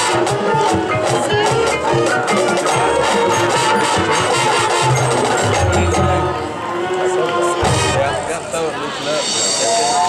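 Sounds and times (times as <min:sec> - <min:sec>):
marching band playing: 0:00.0 - 0:08.3
percussive strikes: 0:00.4 - 0:06.5.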